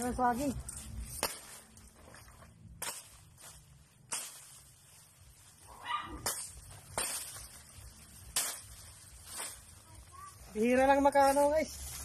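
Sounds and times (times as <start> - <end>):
dry leaves being ripped: 0.0 - 2.0, 2.6 - 12.0.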